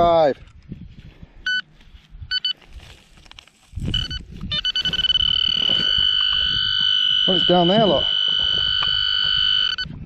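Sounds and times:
pinpointer probe beeping: 1.4 - 1.7, 2.3 - 2.6, 3.8 - 10.0.

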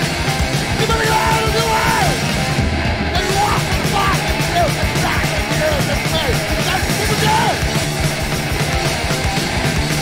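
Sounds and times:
bass and drums: 0.0 - 10.0
distorted electric guitar: 0.0 - 10.0
shouted vocals: 0.6 - 2.3, 3.1 - 7.7.

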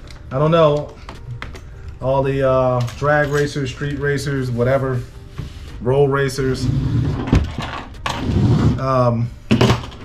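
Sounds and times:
man talking: 2.0 - 5.1, 5.8 - 6.8, 8.8 - 9.3.

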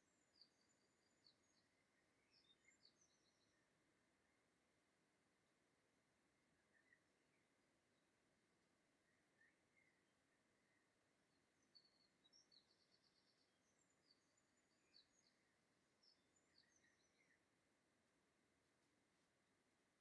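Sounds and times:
faint high bird chirps: 0.0 - 4.7, 6.4 - 8.2, 8.9 - 17.7.

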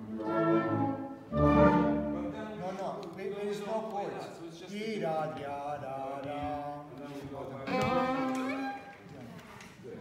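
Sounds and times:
string orchestra: 0.0 - 3.0, 7.5 - 9.5
solo violin: 7.6 - 9.1.

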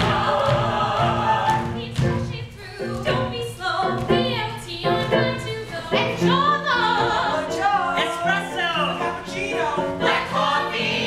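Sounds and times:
group singing show tune: 0.0 - 11.0.

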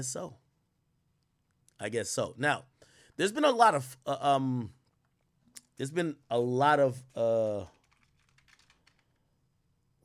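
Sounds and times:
faint keyboard clicks: 7.6 - 9.3.

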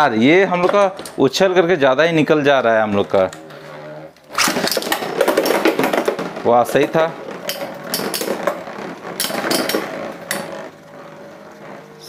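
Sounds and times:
tops whirring: 0.0 - 12.0
tops clacking together: 4.2 - 10.5
spinning tops rattling: 4.3 - 11.0.

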